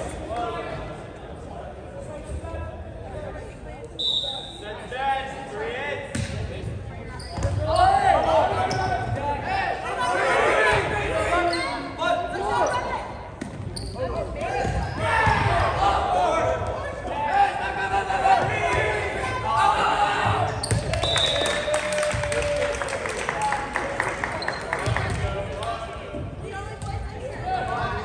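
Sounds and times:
referee's whistle: 0:04.0 - 0:04.6, 0:20.6 - 0:21.7
players shouting: 0:14.4 - 0:20.6.

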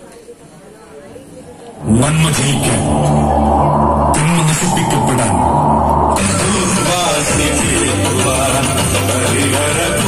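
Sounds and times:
faint hall noise: 0:00.0 - 0:08.6
loud deep rumbling: 0:01.2 - 0:08.2
person speaking: 0:01.4 - 0:07.2.

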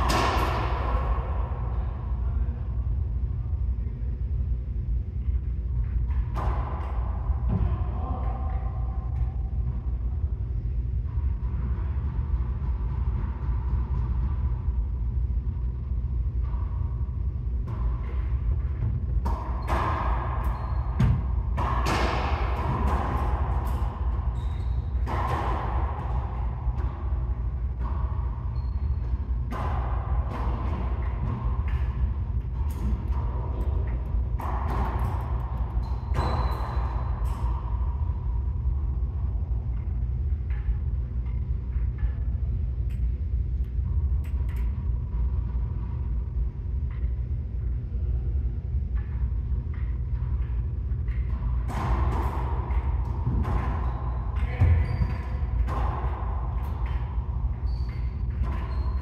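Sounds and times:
steady low hum: 0:00.0 - 0:59.0
racquetball hits ringing: 0:19.2 - 0:37.7.

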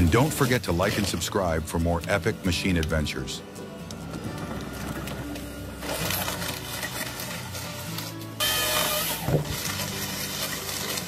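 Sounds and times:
background music: 0:00.0 - 0:11.0
forestry harvester machinery: 0:00.0 - 0:11.0.

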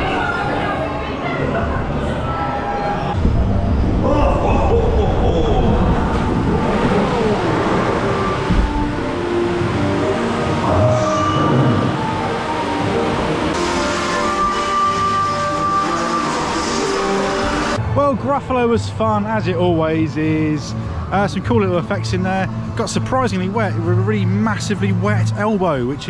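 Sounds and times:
ambient soundtrack music: 0:01.9 - 0:26.0.

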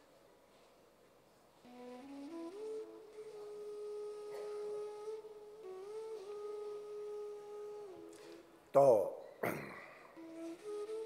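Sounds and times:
loud spoken word: 0:08.8 - 0:09.2.

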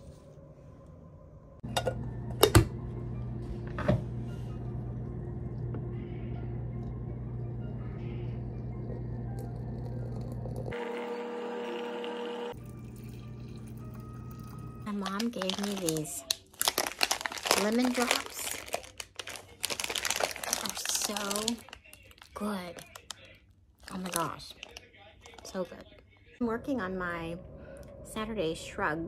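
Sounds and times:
low hum: 0:00.0 - 0:11.0
water pouring into teapot: 0:12.5 - 0:14.9.

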